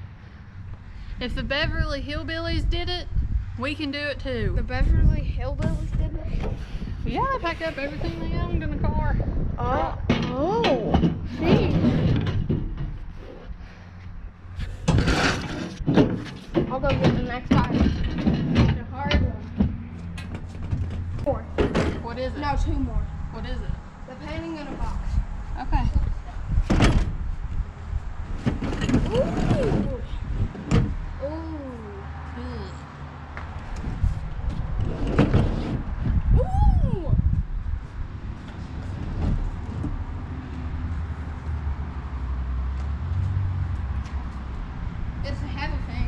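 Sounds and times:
low steady rumble: 0:00.0 - 0:46.0
plastic table scraping truck bed: 0:11.2 - 0:13.0, 0:14.6 - 0:22.0, 0:28.4 - 0:29.9, 0:33.9 - 0:36.1.

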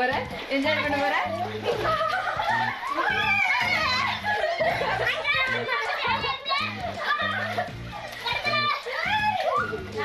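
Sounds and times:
background music with bass line: 0:00.0 - 0:10.0
children's excited voices: 0:00.0 - 0:10.0.

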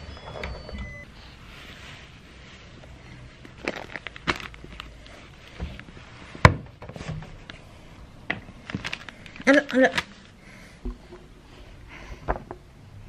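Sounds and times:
rustle of clothing and diaper: 0:01.2 - 0:06.4.

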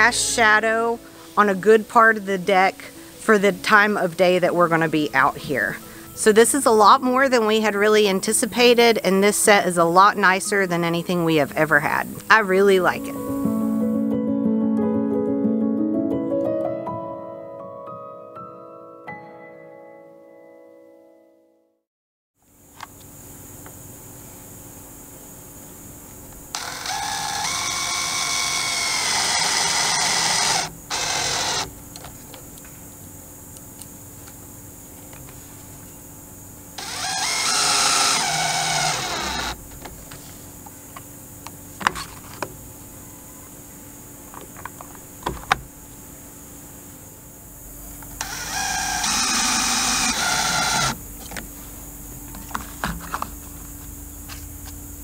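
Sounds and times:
cordless drill driving screws: 0:26.5 - 0:31.7, 0:36.8 - 0:39.6, 0:48.2 - 0:51.0.

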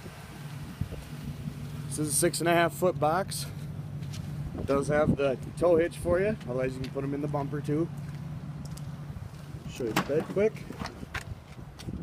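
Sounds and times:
wind rumbling on microphone: 0:00.0 - 0:01.9, 0:04.3 - 0:07.0, 0:08.9 - 0:12.0
vehicle engine humming: 0:00.0 - 0:12.0.

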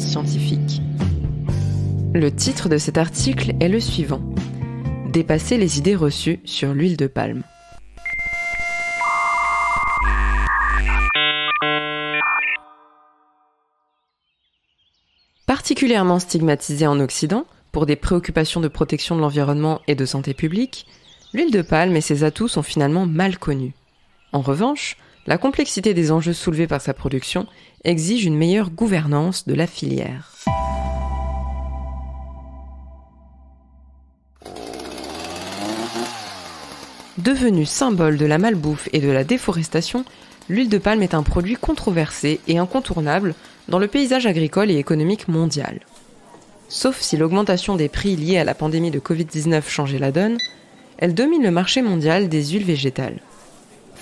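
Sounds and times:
synthesizer music jingle: 0:09.0 - 0:13.8, 0:30.5 - 0:34.3
chainsaw revving: 0:34.4 - 0:44.6.

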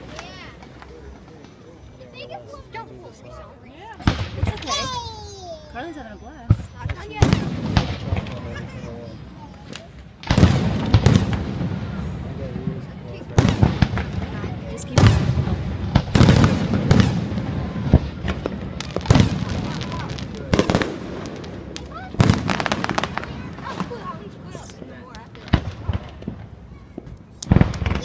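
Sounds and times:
fireworks bursting with bangs: 0:00.0 - 0:02.3, 0:03.2 - 0:28.0.

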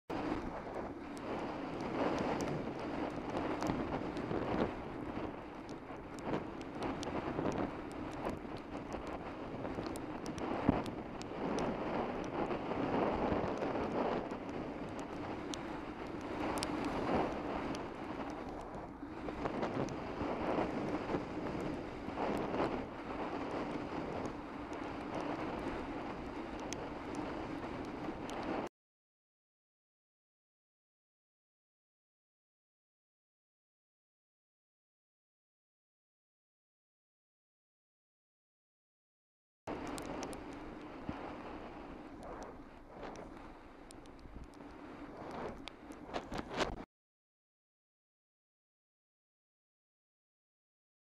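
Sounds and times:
bicycle tyres on wet road: 0:00.1 - 0:28.7, 0:39.7 - 0:46.8
wind: 0:00.1 - 0:28.7, 0:39.7 - 0:46.9
faint ticks: 0:00.2 - 0:28.7, 0:39.7 - 0:46.8.

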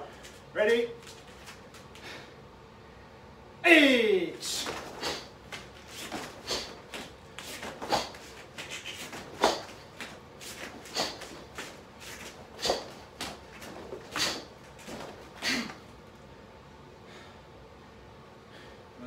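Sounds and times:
bare feet on foam mat: 0:00.0 - 0:02.3, 0:04.4 - 0:16.0
forceful breaths: 0:01.9 - 0:02.4, 0:04.4 - 0:15.9
uniform swishing: 0:04.4 - 0:15.4.

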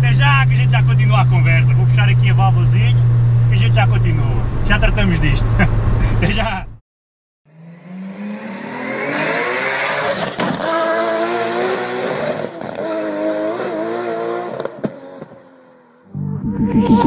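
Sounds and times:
racing car engine revving: 0:07.5 - 0:17.0.

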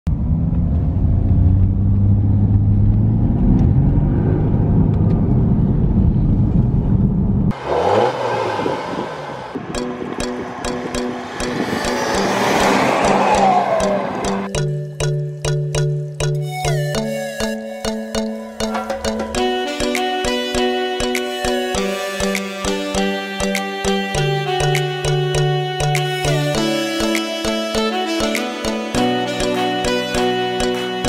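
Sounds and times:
car engine drone inside cabin: 0:00.1 - 0:14.5
engine revving: 0:00.1 - 0:14.5
music with steady beat: 0:09.7 - 0:31.0.

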